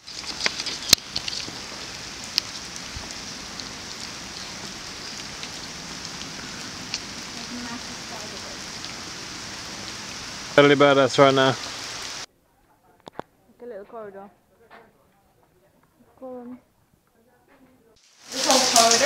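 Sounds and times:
rain falling on foliage: 0:00.0 - 0:12.3, 0:18.0 - 0:19.0.

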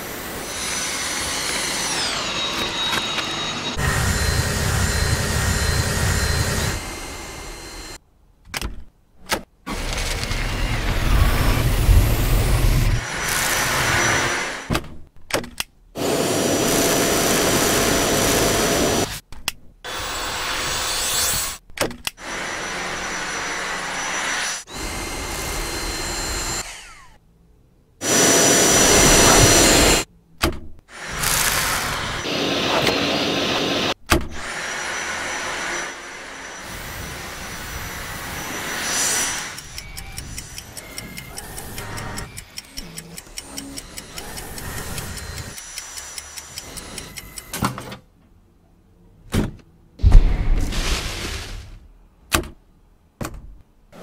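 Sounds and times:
stick vacuum whining: 0:00.3 - 0:08.0, 0:28.0 - 0:30.1.

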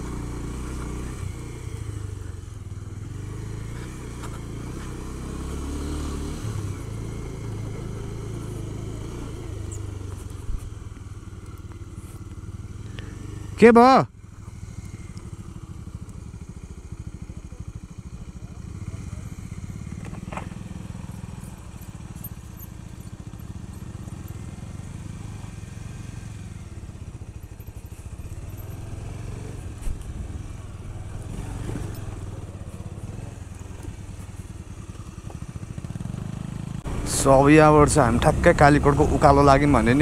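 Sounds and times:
motorcycle engine rumbling: 0:00.0 - 0:40.0.

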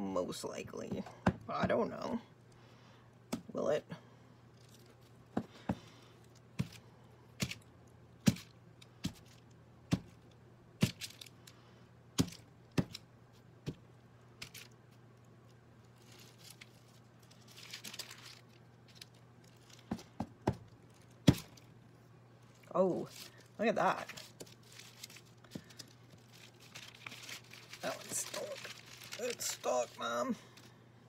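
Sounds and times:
paper rustle: 0:15.8 - 0:20.0, 0:22.5 - 0:30.8.

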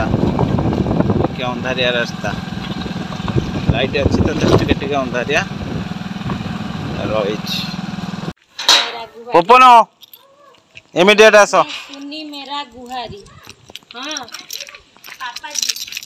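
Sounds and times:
motorbike engine running: 0:00.0 - 0:08.4.

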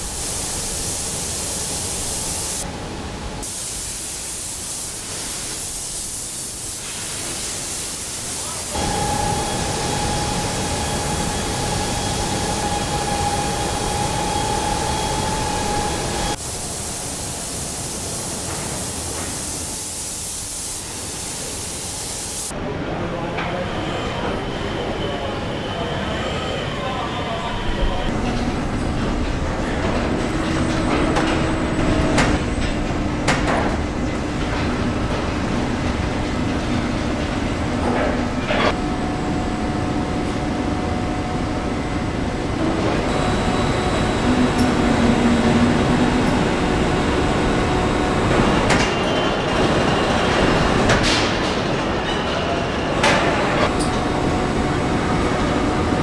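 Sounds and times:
machinery hum with whining tones: 0:08.1 - 0:20.4, 0:21.9 - 0:56.0.

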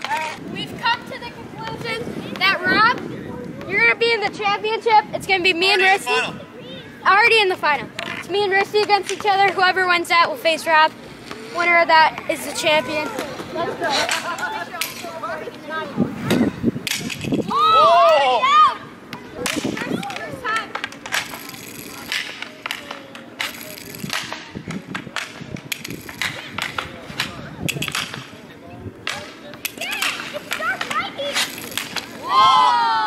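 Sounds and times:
hockey sticks clacking: 0:00.0 - 0:06.2, 0:07.1 - 0:18.3, 0:19.1 - 0:33.0
inline skate wheels rolling: 0:00.0 - 0:06.3, 0:07.0 - 0:33.0
people shouting: 0:17.5 - 0:18.9, 0:32.1 - 0:33.0.

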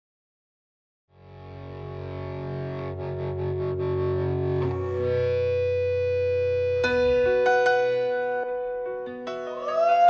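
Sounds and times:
sustained guitar and keyboard chords: 0:01.2 - 0:10.0.

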